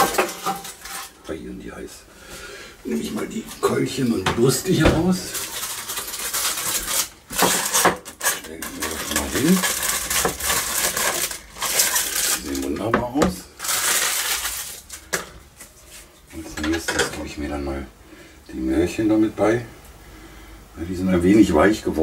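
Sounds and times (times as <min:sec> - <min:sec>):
clatter of pans and utensils: 0:00.0 - 0:01.2, 0:04.3 - 0:12.3, 0:16.5 - 0:17.2.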